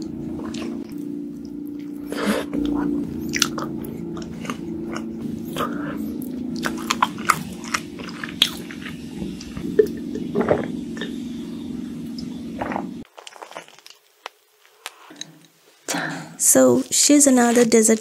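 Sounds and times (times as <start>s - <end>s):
steady low hum: 0.0s - 13.1s
chewing and biting: 6.6s - 9.8s, 12.6s - 15.5s.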